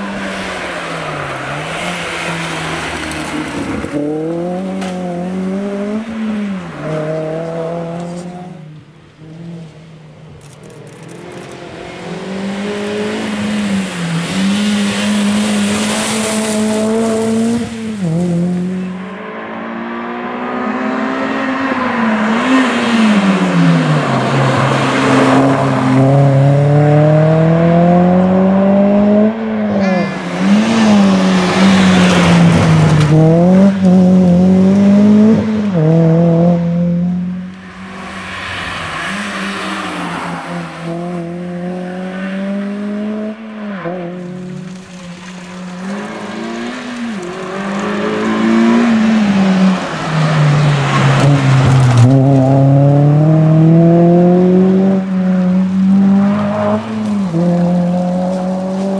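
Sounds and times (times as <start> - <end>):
rally car engine revving: 0.0 - 58.9.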